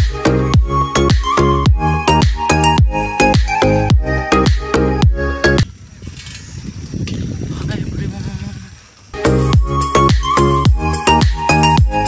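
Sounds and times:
wind rumbling on microphone: 5.5s - 9.5s.

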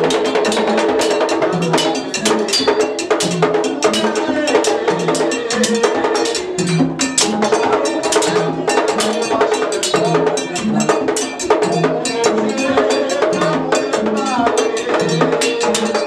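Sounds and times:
deep drum beat: 0.0s - 16.0s
drums: 0.0s - 16.0s.

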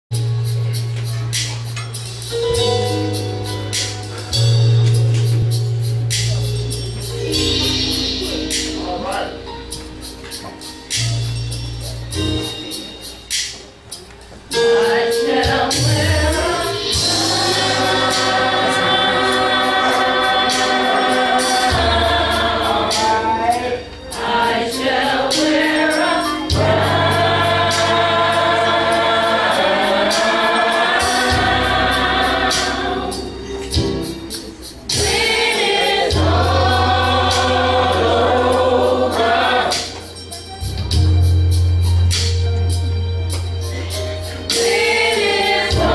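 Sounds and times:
gospel choir singing: 14.5s - 40.4s, 43.8s - 45.9s.

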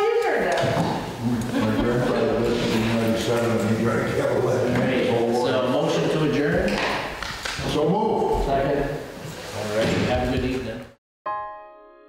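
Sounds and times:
man speaking in a large hall: 1.1s - 11.0s.

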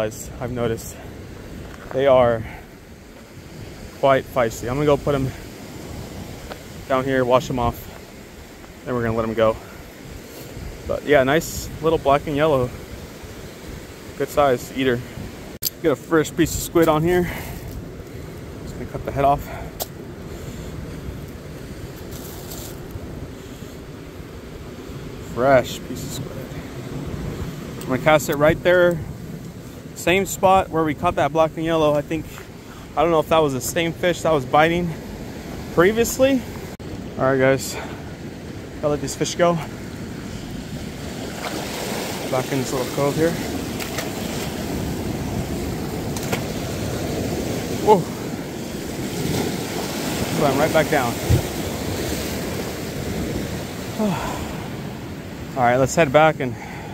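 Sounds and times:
wind buffeting microphone: 0.0s - 15.6s, 16.2s - 55.6s
ocean surf: 0.0s - 56.9s
wind noise on microphone: 5.0s - 14.1s, 43.5s - 53.8s.

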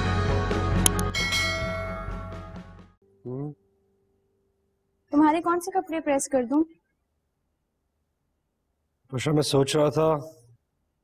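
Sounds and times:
music: 0.0s - 4.4s
sharp click: 0.9s - 1.1s
bell-like chime: 1.1s - 2.6s.

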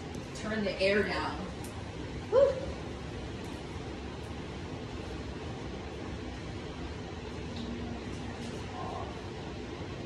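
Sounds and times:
air conditioning hiss: 0.0s - 10.0s
woman exclaiming woo: 2.3s - 2.8s.

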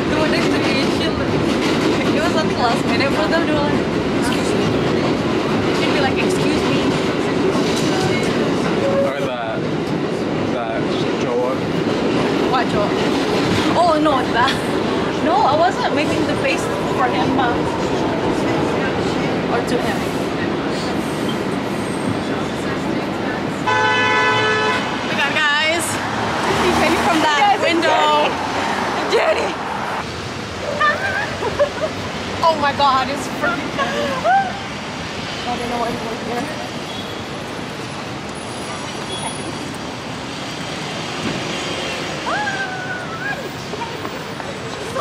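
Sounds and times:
road traffic: 0.0s - 45.0s
horn blast: 23.7s - 25.0s.

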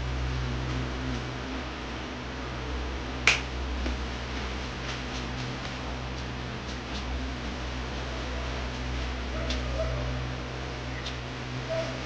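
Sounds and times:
low hum and hiss: 0.0s - 12.0s.

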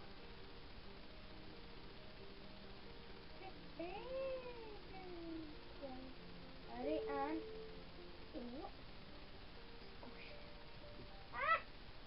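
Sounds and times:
meow-like call: 11.3s - 11.7s.

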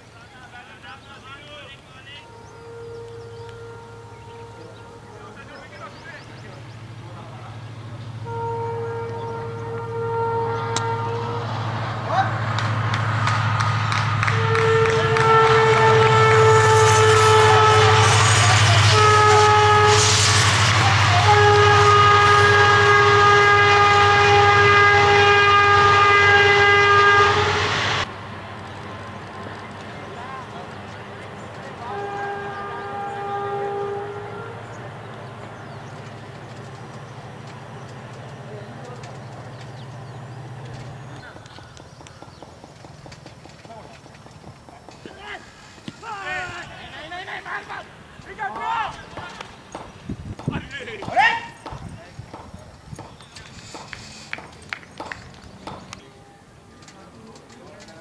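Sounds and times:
horn long steady note: 1.4s - 28.1s, 31.2s - 41.3s.

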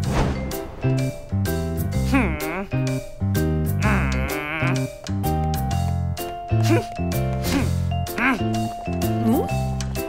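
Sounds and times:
cartoon music with bass line: 0.0s - 10.0s
character bleat-like vocal: 2.0s - 2.9s, 3.8s - 4.9s, 7.5s - 8.6s.

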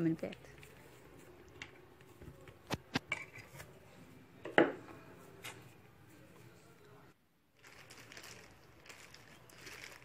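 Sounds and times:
cling film crinkling: 7.6s - 10.0s.

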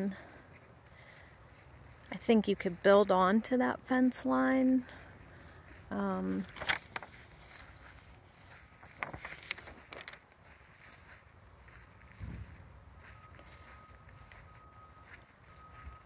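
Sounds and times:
wind rumbling on microphone: 12.1s - 12.7s.

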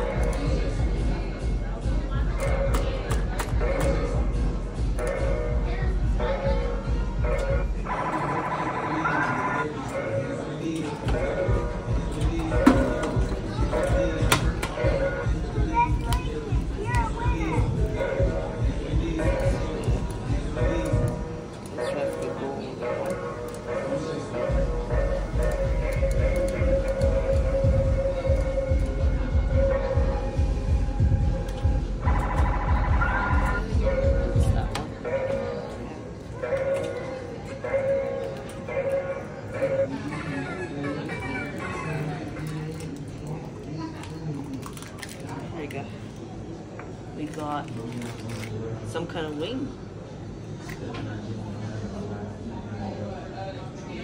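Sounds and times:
electronic arcade game music: 24.5s - 34.7s.

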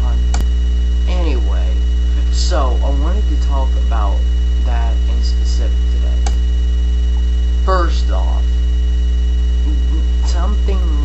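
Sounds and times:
electrical mains hum: 0.0s - 11.0s
click: 0.3s - 0.5s, 6.2s - 6.5s
quiet speech: 9.6s - 11.0s.

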